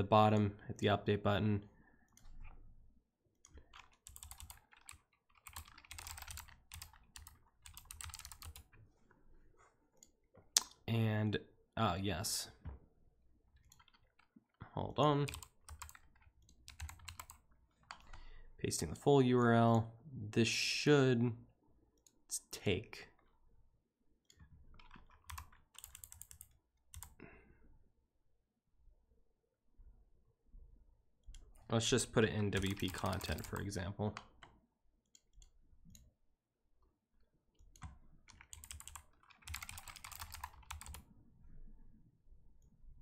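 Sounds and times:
typing on computer keyboard: 3.5 - 8.7, 13.6 - 14.3, 15.2 - 18.2, 24.7 - 27.2, 32.5 - 33.6, 37.7 - 41.0.

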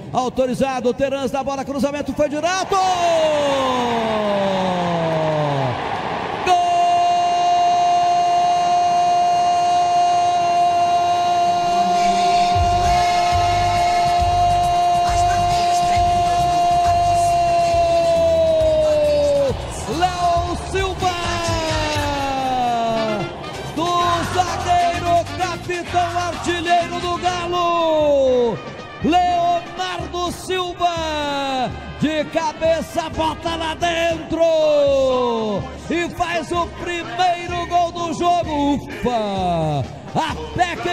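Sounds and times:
radio narrator shouting: 6.4 - 40.9
music jingle with drum beat: 12.0 - 28.9, 37.4 - 40.9.

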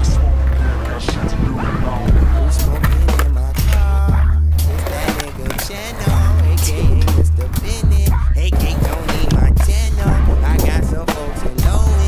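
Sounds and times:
hip-hop music with heavy bass: 0.0 - 12.0
skateboard clacks: 0.0 - 12.0
skateboard wheels rolling on concrete: 0.0 - 12.0.

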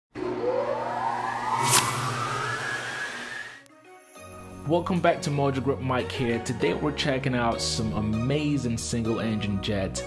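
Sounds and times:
low hum: 0.1 - 3.7
tone rising in pitch: 0.1 - 3.7
sharp hit: 0.2 - 3.6.

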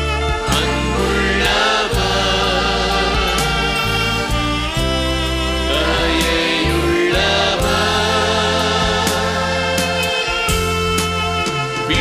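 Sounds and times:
instrumental backing: 0.0 - 12.0
women's choir singing: 0.5 - 4.0, 5.7 - 10.1.

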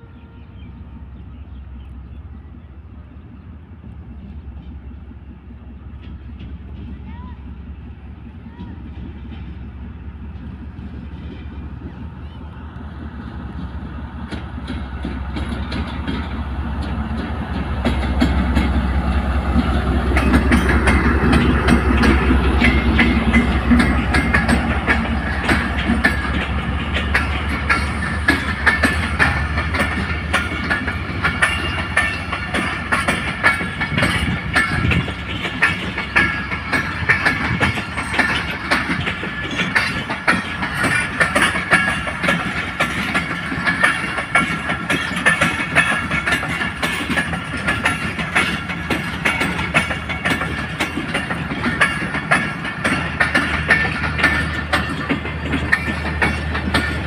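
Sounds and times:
diesel locomotive engine drone: 0.0 - 57.0
train wheels clattering: 3.4 - 57.0.

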